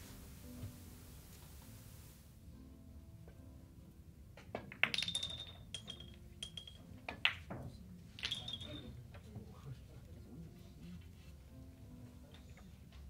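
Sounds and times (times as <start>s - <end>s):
billiard balls clicking: 4.4s - 9.0s.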